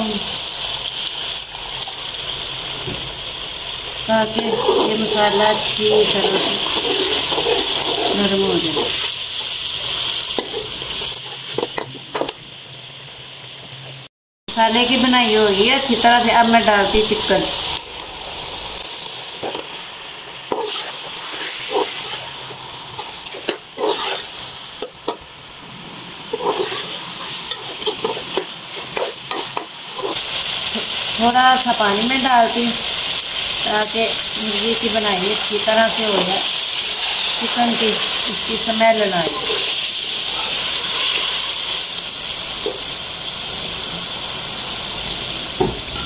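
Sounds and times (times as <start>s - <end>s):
masala sizzling in oil: 0.0s - 46.0s
metal spoon stirring: 4.4s - 9.0s, 23.4s - 24.9s, 26.3s - 30.2s
steel spoon scraping and knocking pan: 4.4s - 9.0s.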